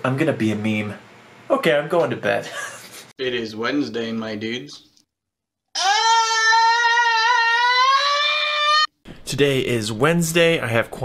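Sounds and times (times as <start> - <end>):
man screaming high-pitched: 5.8 - 8.9.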